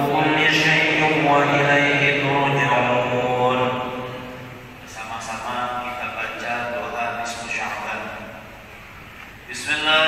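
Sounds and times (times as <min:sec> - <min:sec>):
devotional chanting voice: 0:00.0 - 0:08.5, 0:09.5 - 0:10.0.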